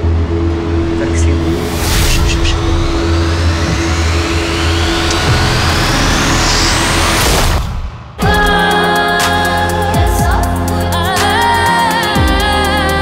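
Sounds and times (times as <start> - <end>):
low held drone: 0.0 - 13.0
rising sweep into whoosh: 0.6 - 8.6.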